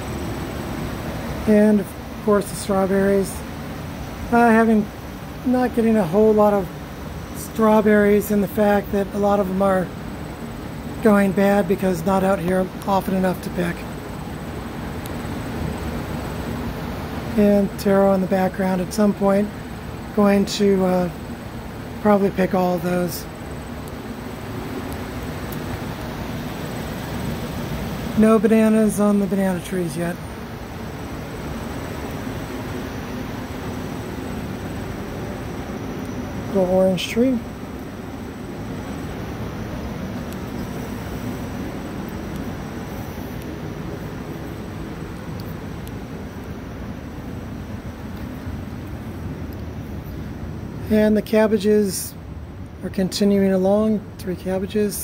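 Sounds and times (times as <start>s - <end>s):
industrial fans rushing: 0.0s - 55.0s.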